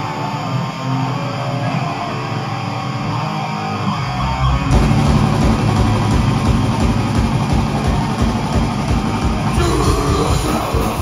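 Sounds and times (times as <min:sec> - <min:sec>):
distorted electric guitar and bass: 0:00.0 - 0:11.0
fast drumming: 0:04.7 - 0:11.0
shouted vocal: 0:09.5 - 0:11.0.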